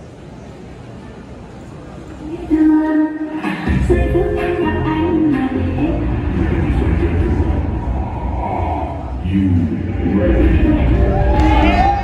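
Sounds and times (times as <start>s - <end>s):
steady low rumble: 3.7s - 12.0s
indistinct murmur: 6.0s - 12.0s.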